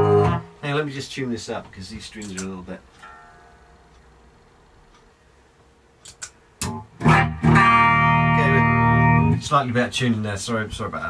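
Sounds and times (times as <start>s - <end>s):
electric guitar note ringing: 0.0s - 0.6s, 3.0s - 3.9s, 6.6s - 9.4s
amplifier hum: 0.0s - 11.0s.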